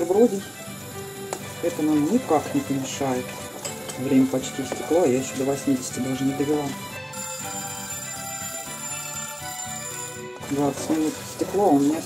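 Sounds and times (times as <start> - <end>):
kitchen timer ringing: 7.0 - 11.1.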